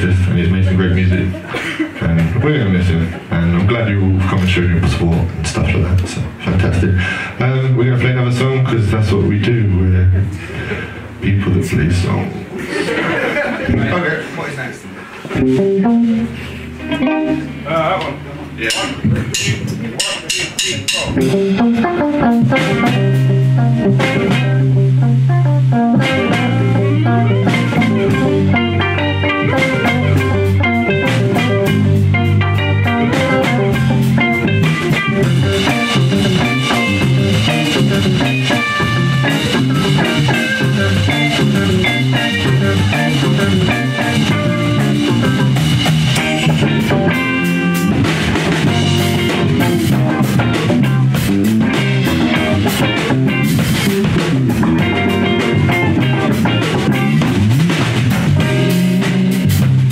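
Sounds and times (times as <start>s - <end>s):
rock band playing: 0.0s - 14.0s, 15.0s - 59.9s
cymbals: 18.6s - 23.3s.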